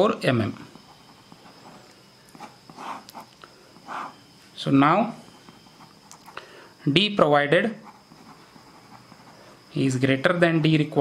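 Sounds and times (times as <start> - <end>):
pen scratching on paper: 0.6 - 4.2, 7.6 - 9.4.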